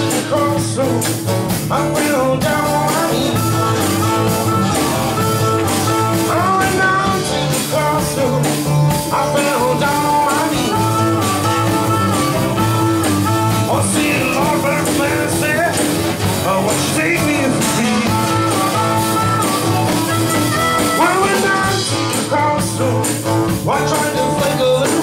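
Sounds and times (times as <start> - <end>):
live blues band playing: 0.0 - 25.0.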